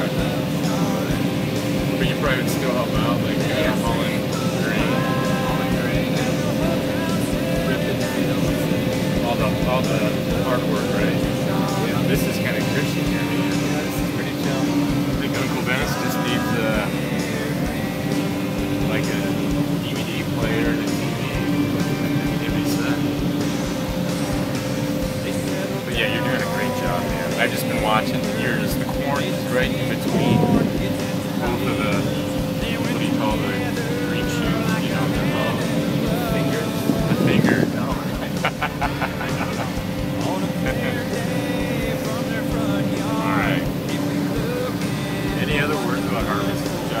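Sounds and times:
combine harvester drone: 0.0 - 47.0.

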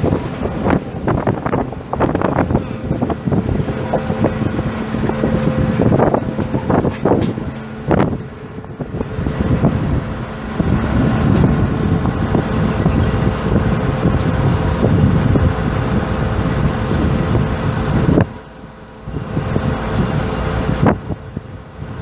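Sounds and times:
diesel engine running: 0.0 - 22.0.

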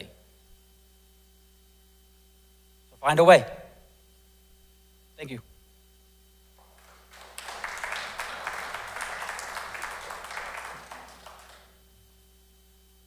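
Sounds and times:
audience applauding: 6.6 - 11.8.

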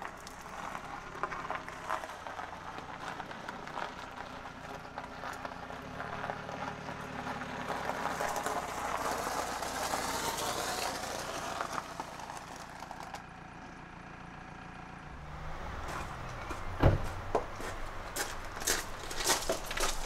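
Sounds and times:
tyres crunching on gravel: 0.0 - 13.3, 15.1 - 20.0
car engine at low speed: 0.0 - 20.0.

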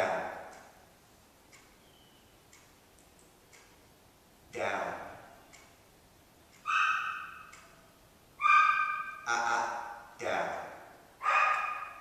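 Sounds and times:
dog whining: 8.4 - 9.2.

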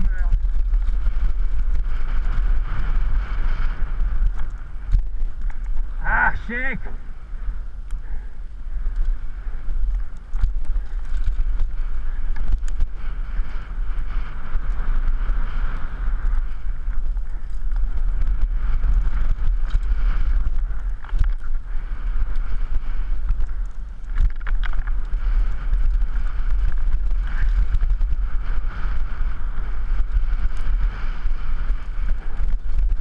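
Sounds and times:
wind rushing over microphone: 0.0 - 33.0
bike clicks and knocks: 3.6 - 5.8, 8.9 - 13.6, 14.6 - 21.6, 22.2 - 28.0
tyre noise on dirt: 8.9 - 33.0.

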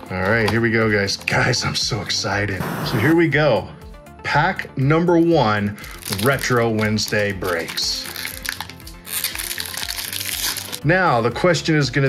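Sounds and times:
wrapper tearing and crinkling: 5.8 - 10.8.

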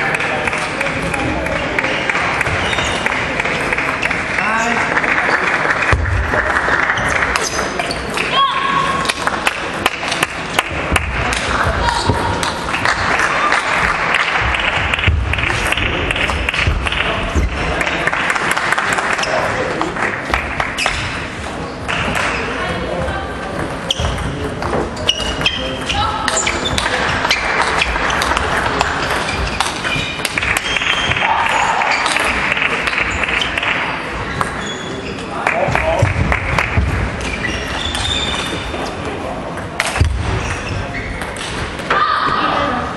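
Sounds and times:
hubbub of many voices: 0.0 - 42.9.

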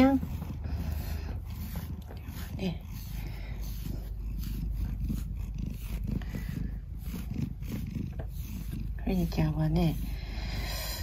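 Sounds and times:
cat purring: 0.0 - 11.0.

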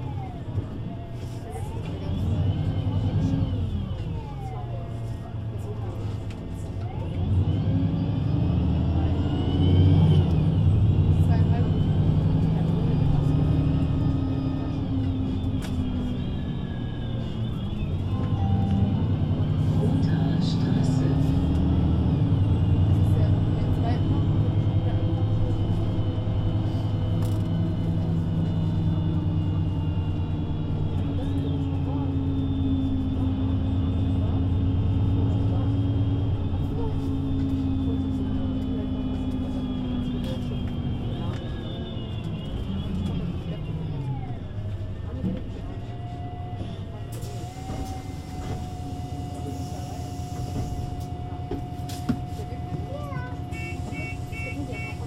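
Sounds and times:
bus diesel engine: 0.0 - 55.0.

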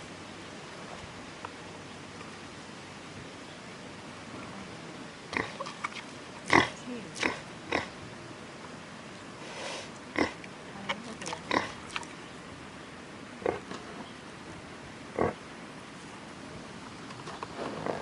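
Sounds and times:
wild boar grunting: 13.4 - 14.0, 15.2 - 15.4, 17.6 - 18.0.

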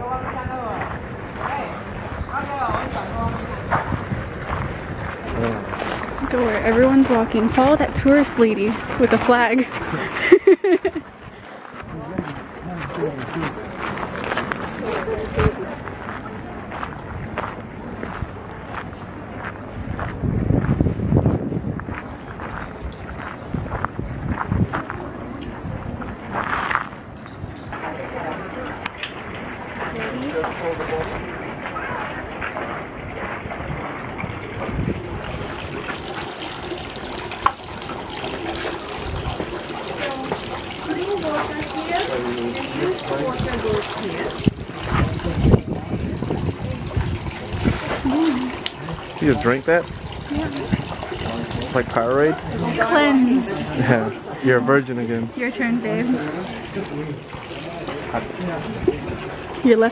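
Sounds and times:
people talking: 0.0 - 4.0, 5.3 - 11.0, 11.8 - 16.8, 39.2 - 59.9
water trickling into stone basin: 2.3 - 16.0, 27.1 - 59.9
footsteps on path: 3.4 - 10.4, 11.0 - 27.2
water splashing from ladles: 3.5 - 15.8, 26.5 - 59.9.

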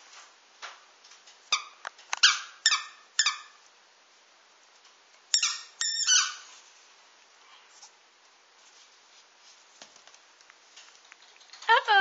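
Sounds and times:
squeaky ball squeaking: 1.5 - 3.6, 5.3 - 6.5.

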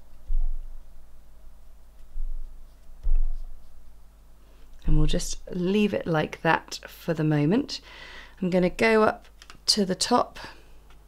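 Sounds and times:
dull low thumps: 0.0 - 1.1, 2.1 - 4.0
faint room hum: 0.0 - 11.0
brush on paper: 1.9 - 4.0.

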